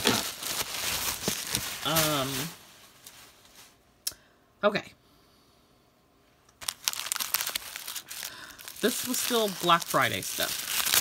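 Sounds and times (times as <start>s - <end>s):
plastic sleeves crinkling: 0.0s - 3.8s, 6.6s - 11.0s.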